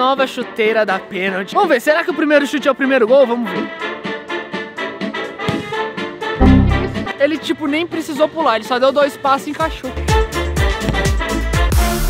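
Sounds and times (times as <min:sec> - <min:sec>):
music with brass and beat: 0:04.8 - 0:07.1, 0:10.2 - 0:12.0
loud low boom: 0:06.4 - 0:07.1.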